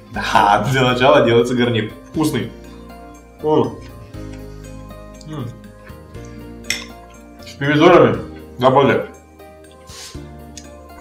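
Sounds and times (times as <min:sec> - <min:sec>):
background music: 0:00.0 - 0:11.0
fork clinking against dish: 0:06.7 - 0:07.0.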